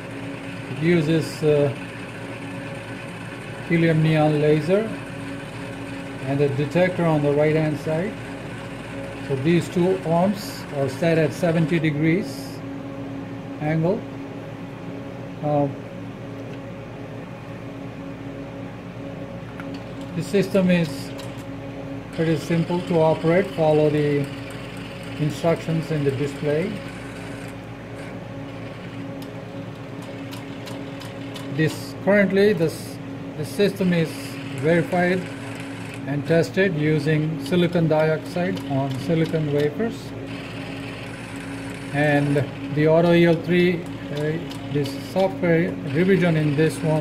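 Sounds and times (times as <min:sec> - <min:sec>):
electrical hum of equipment: 0:00.0 - 0:47.0.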